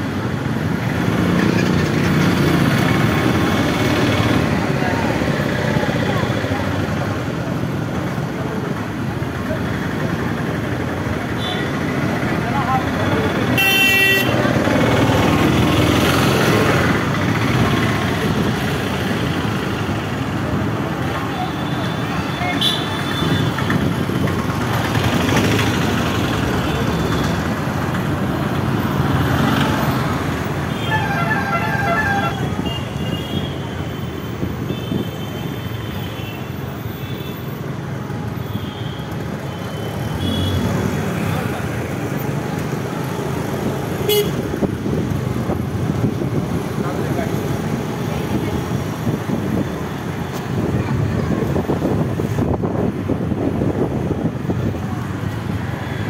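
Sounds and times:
street traffic engines and road noise: 0.0s - 56.0s.

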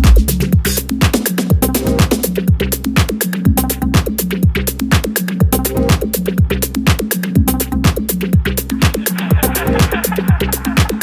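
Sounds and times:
bass line: 0.0s - 11.0s
electronic dance music: 0.0s - 11.0s
kick drum: 0.0s - 11.0s.

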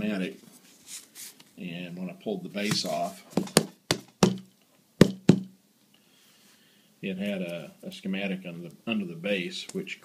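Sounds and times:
hard objects knocking on tabletop: 3.4s - 5.5s.

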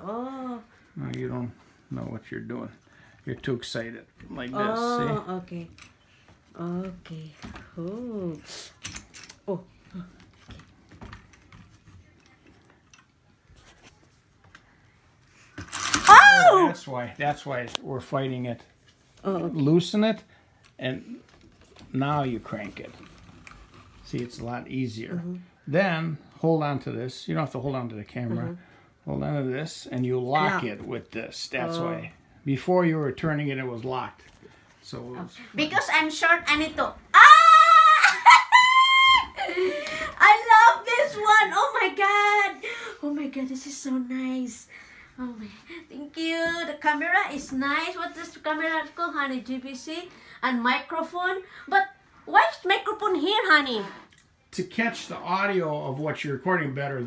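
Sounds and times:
woman squealing with delight: 16.0s - 16.8s, 37.2s - 40.1s.

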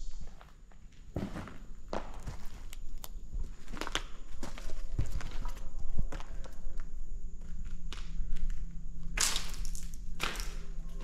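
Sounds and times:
footsteps on debris: 0.2s - 11.0s.

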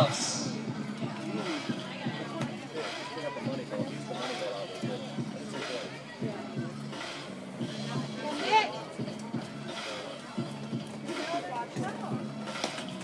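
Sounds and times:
background music: 0.0s - 13.0s
spectator chatter: 0.0s - 13.0s.

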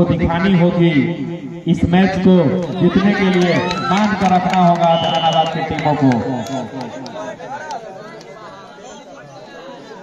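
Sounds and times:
babble of many voices: 5.4s - 10.0s.

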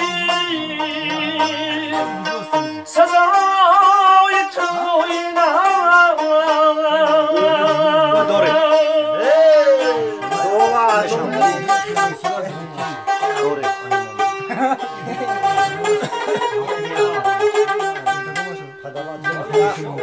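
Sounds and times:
man singing: 0.0s - 12.4s
plucked lute notes: 0.0s - 20.0s.

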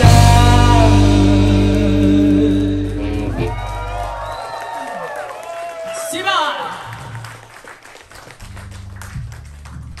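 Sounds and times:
audience applause: 3.3s - 10.0s.

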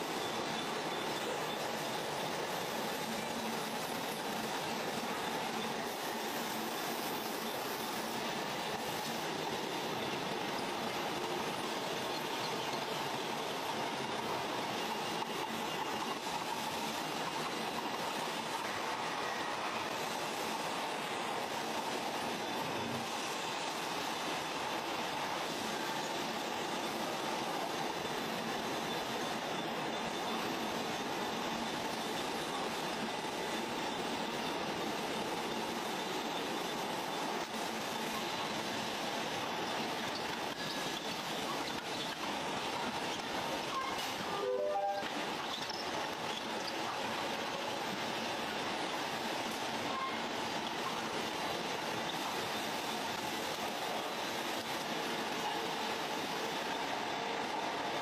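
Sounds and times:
machinery hissing drone: 0.0s - 58.0s.

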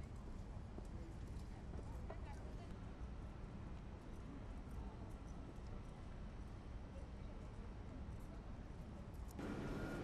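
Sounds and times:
low traffic rumble: 9.4s - 10.0s.

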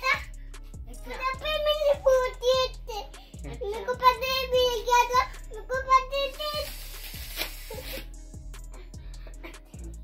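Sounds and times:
young child singing: 0.0s - 6.9s.

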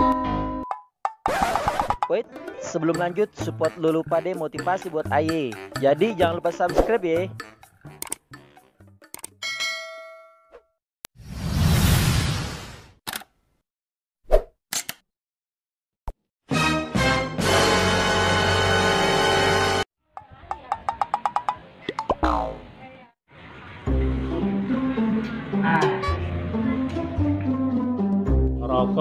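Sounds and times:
bell ding: 9.4s - 10.6s.

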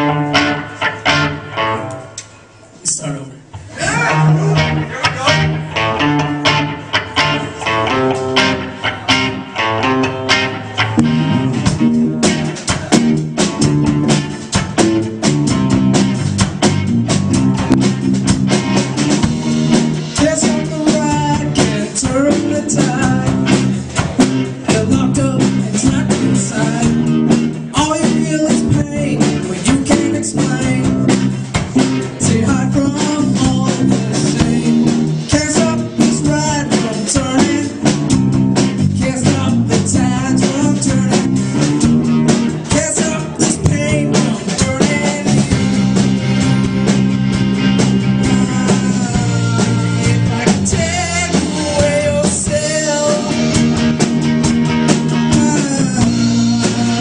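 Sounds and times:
live band playing: 0.0s - 57.0s.

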